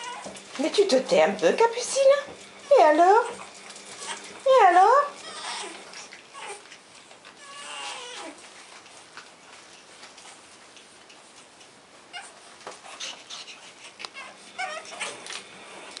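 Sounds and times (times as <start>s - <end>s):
puppies whining: 0.0s - 0.5s, 2.4s - 8.6s, 12.1s - 15.8s.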